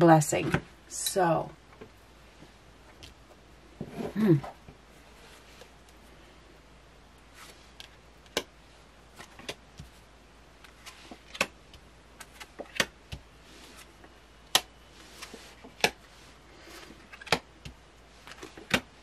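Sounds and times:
cards slapping on a table: 11.2s - 13.2s.

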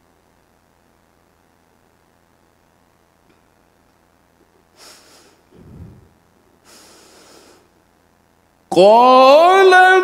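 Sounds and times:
person reciting: 8.7s - 10.0s.

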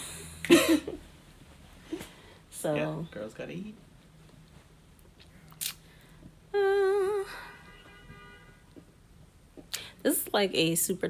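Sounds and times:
person humming: 6.5s - 7.4s.

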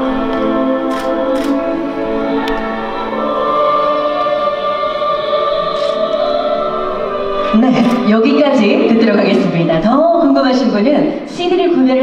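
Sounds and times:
musical accompaniment: 0.0s - 11.3s
soprano singing classical piece: 0.0s - 12.0s.

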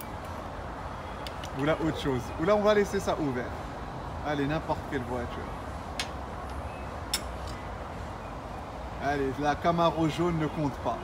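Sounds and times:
distant highway traffic: 0.0s - 11.0s.

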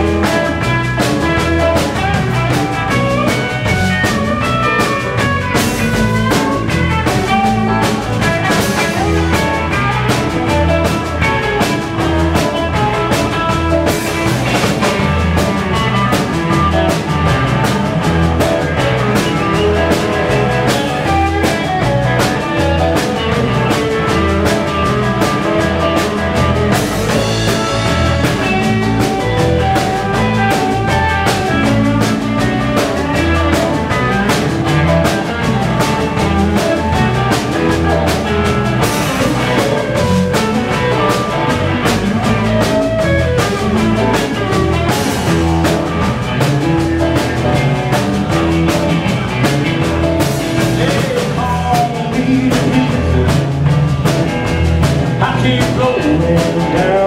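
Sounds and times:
bass guitar: 0.0s - 57.0s
drum kit beat: 0.0s - 57.0s
electric guitars: 0.0s - 57.0s.

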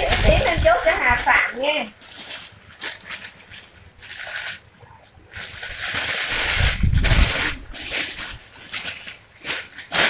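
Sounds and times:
clothing rustling: 0.0s - 10.0s.

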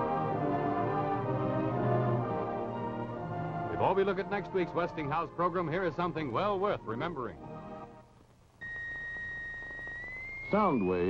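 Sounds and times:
high pure tone: 8.6s - 11.0s.

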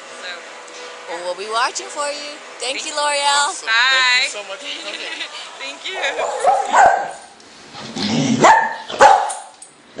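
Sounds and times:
dog barking: 6.0s - 7.3s, 8.4s - 9.5s.

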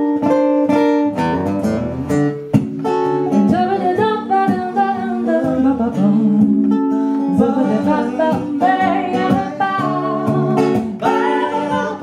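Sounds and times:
plucked guitar: 0.0s - 12.0s
person singing: 3.4s - 12.0s.

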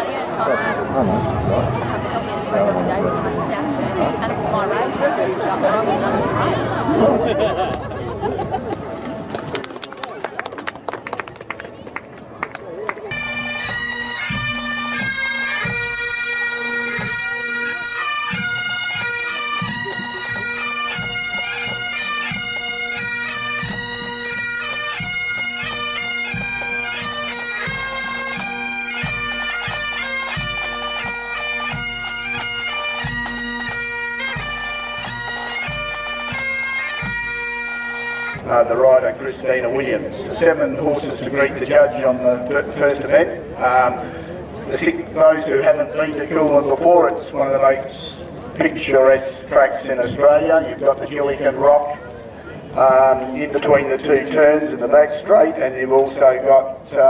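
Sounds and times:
bagpipes playing: 13.1s - 46.8s
drum beats: 18.3s - 37.5s.

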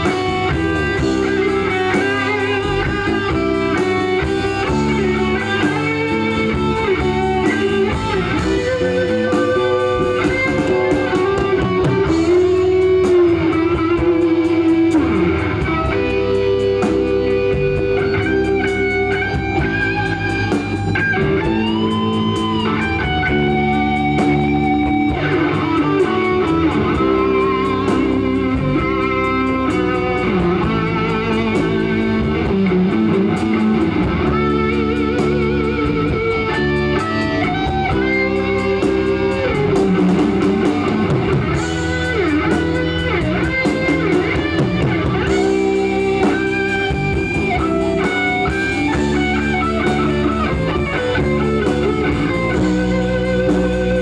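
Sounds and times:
bass guitar: 0.0s - 54.0s
drums: 0.0s - 54.0s
electric guitars: 0.0s - 54.0s.

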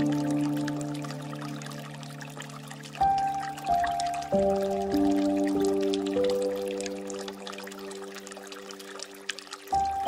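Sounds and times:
faint meditation music chord: 0.0s - 10.0s
water trickling and dripping: 0.0s - 10.0s.

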